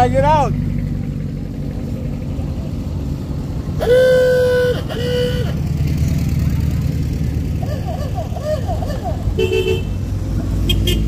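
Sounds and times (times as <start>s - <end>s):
dune buggy engines rumbling: 0.0s - 11.0s.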